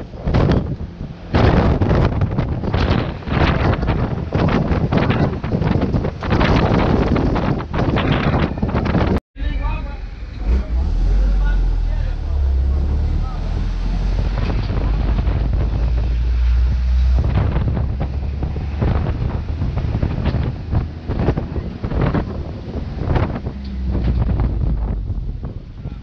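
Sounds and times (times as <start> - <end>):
wind buffeting microphone: 0.0 - 9.2, 10.4 - 26.0
low rumble of moving vehicle: 0.0 - 26.0.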